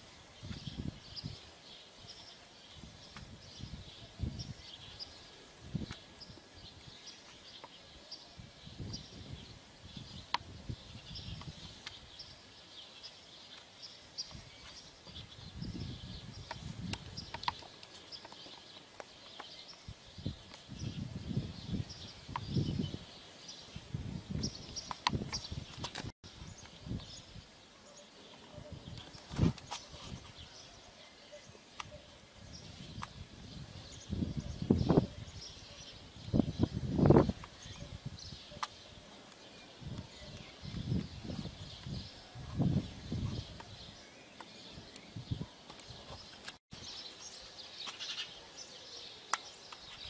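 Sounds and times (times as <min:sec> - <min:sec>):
birds chirping: 0:00.0 - 0:50.0.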